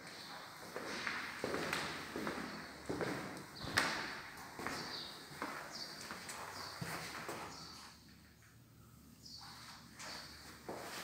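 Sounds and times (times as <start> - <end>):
footsteps on a hard floor: 0.0 - 7.6, 9.4 - 11.0.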